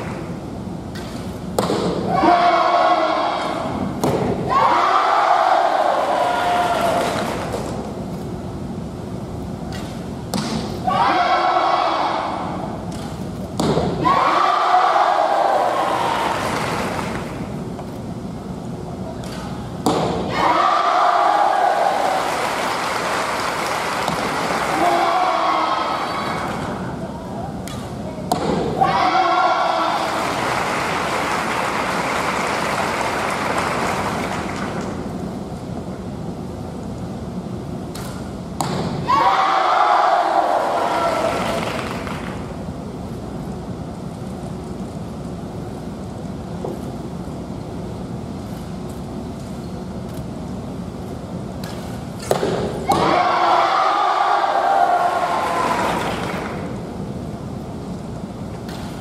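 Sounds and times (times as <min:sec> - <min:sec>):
crowd shouting: 0:02.1 - 0:03.8, 0:04.5 - 0:07.2, 0:20.3 - 0:22.5, 0:39.0 - 0:41.7, 0:52.9 - 0:56.1
crowd applause: 0:22.0 - 0:24.8, 0:30.0 - 0:34.9.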